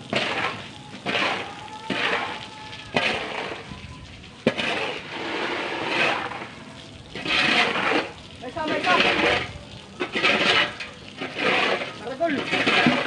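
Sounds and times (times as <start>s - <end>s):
shovel scraping wet concrete: 0.1s - 3.7s, 4.4s - 13.0s.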